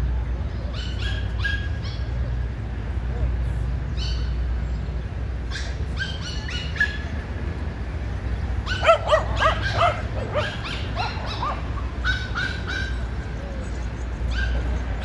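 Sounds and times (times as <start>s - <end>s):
small dogs barking: 0.7s - 2.2s, 5.5s - 7.2s, 8.6s - 15.0s.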